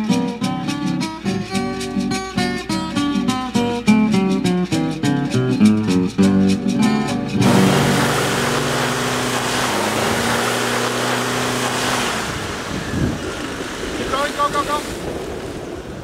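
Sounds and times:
tyres churning in mud: 1.1 - 16.0
engine working hard: 7.1 - 14.4
steady rush of noise: 7.3 - 14.8.

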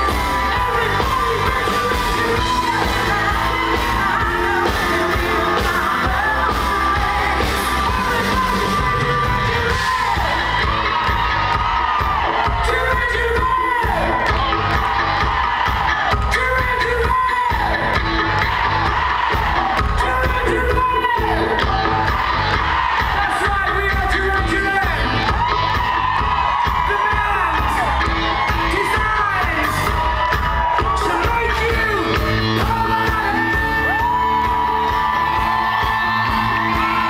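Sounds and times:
male lead vocal: 0.0 - 10.7, 12.4 - 14.4, 16.0 - 18.0, 19.8 - 22.1, 23.0 - 25.2, 28.6 - 37.0
live pop-rock band playing: 0.0 - 37.0.

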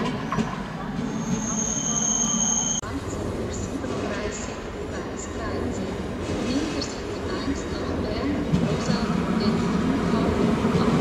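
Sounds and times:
train wheels rumbling on rails: 2.8 - 11.0.

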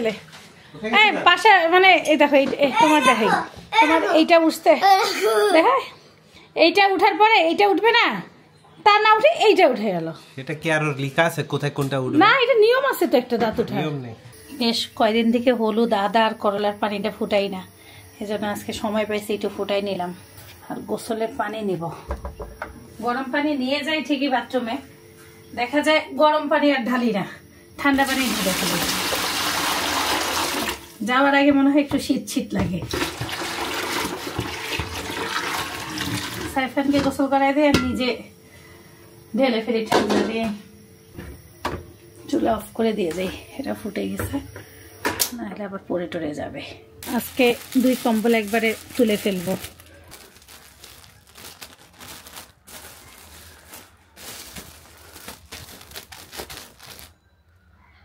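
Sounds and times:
water pouring into plastic bucket: 28.3 - 30.9, 32.9 - 36.6
plastic bags crinkling: 47.0 - 57.2.

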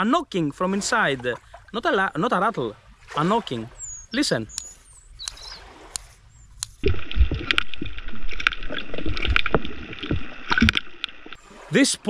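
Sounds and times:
rushing underwater water: 0.6 - 4.5, 5.2 - 12.0
lure knocking underwater: 6.8 - 11.4.

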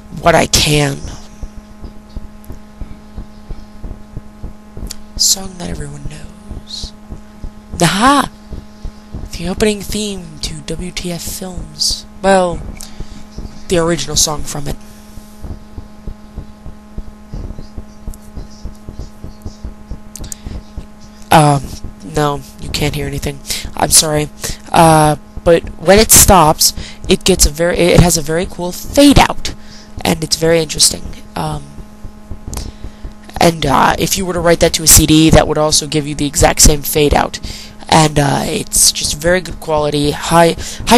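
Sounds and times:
soft low thumps: 0.0 - 34.4
low electrical hum: 0.0 - 40.9.

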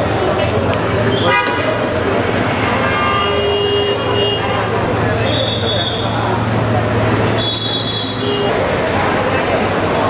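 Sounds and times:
traffic noise: 0.0 - 10.0
vehicle horns: 1.1 - 1.8, 2.4 - 6.2, 7.4 - 8.6.

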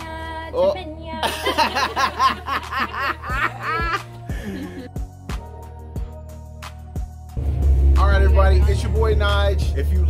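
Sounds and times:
background music with low beat: 0.0 - 10.0
person laughing: 1.1 - 5.0.

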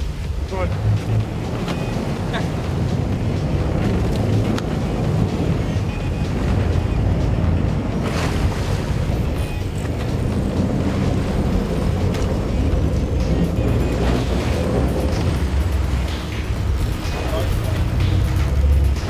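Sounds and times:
background music: 0.0 - 19.0
boat engine running: 0.0 - 19.0
wind and sea rushing: 0.0 - 19.0.

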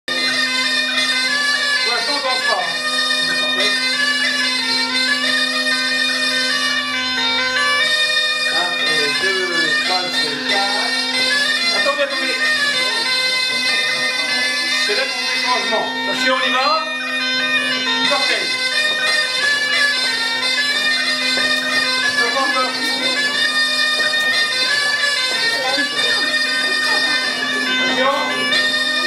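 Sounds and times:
bagpipe playing dance tune: 0.1 - 29.0.

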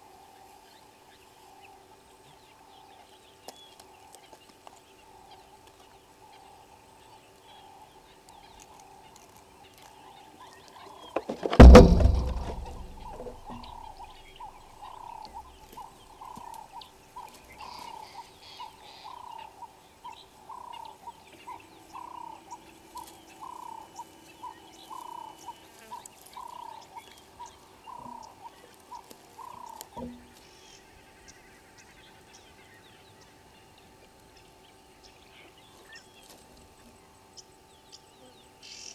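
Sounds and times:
thump: 11.2 - 14.1.

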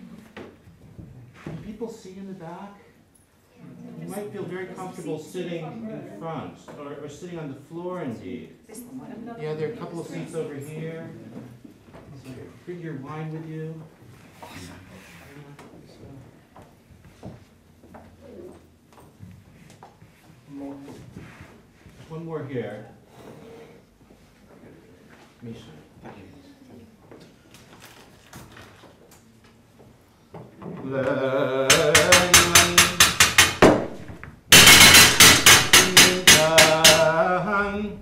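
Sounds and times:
people moving and murmuring: 0.0 - 33.0
rhythmic sharp knocking: 31.7 - 38.0.

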